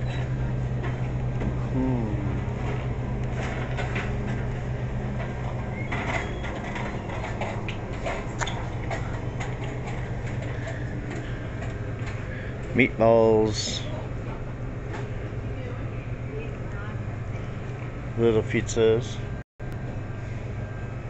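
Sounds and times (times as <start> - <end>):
freezer cases humming: 0.0 - 21.0.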